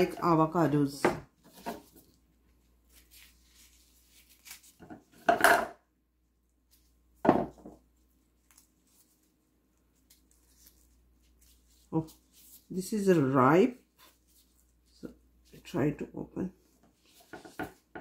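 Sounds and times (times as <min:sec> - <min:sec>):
knocks on wooden cutting board: 0:07.2 - 0:07.8.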